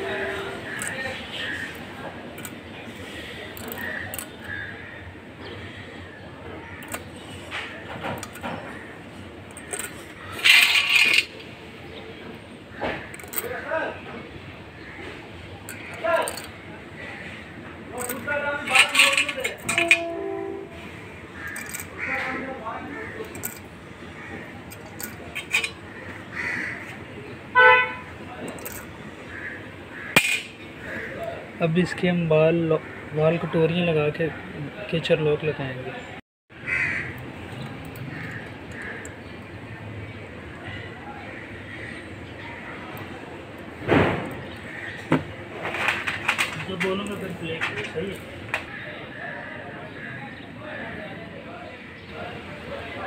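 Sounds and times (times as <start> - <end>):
steel springs jingling and clinking: 9.5 - 11.4, 18.0 - 20.5, 21.5 - 22.0, 23.3 - 23.7, 24.7 - 25.8, 28.5 - 28.9.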